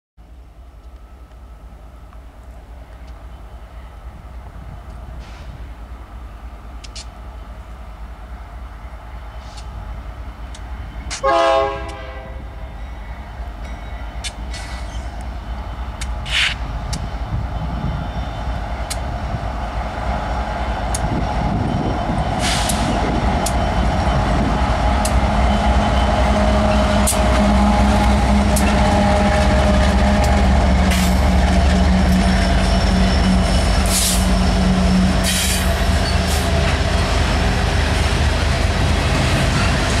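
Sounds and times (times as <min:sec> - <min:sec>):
diesel locomotive engines droning: 0:00.2 - 0:40.0
wheels clicking and squealing on rails: 0:00.3 - 0:40.0.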